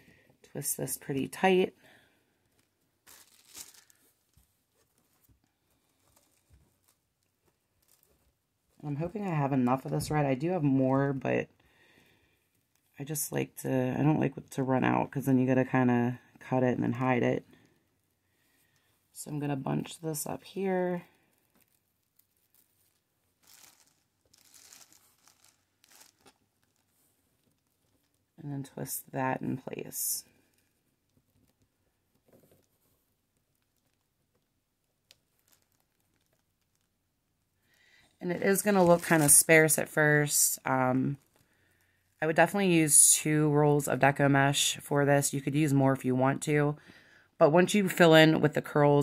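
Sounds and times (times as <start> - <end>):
plastic mesh rustling and crinkling: 1.2 - 10.2, 20.4 - 28.4, 29.8 - 40.3, 41.1 - 42.2.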